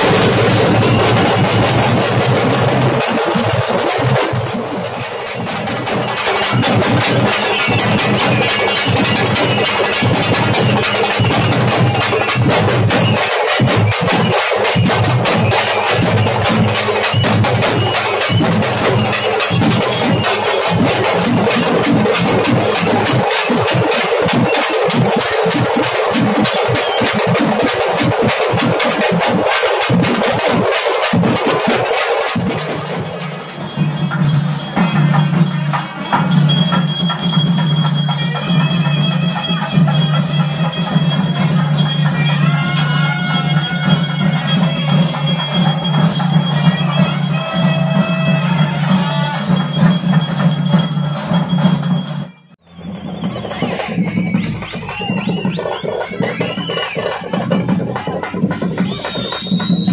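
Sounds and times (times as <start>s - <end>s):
drum band playing fast rhythm: 0.0s - 59.9s.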